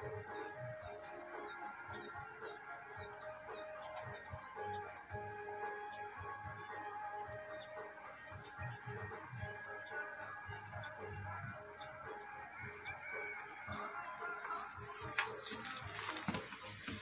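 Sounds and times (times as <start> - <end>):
high-pitched insect drone: 0.0 - 17.0.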